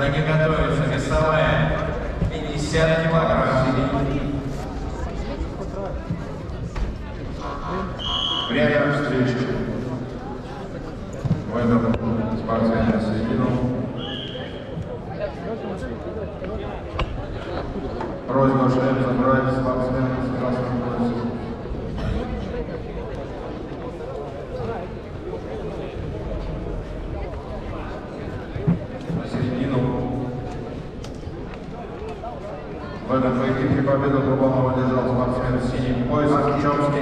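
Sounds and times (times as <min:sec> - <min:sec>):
chatter of many voices echoing: 0:00.0 - 0:37.0.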